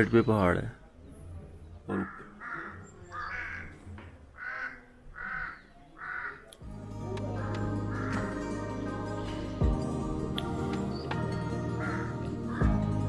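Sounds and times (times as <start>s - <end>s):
crow cawing: 1.9s - 6.6s, 7.4s - 8.6s, 11.7s - 13.0s
background music: 6.6s - 13.0s.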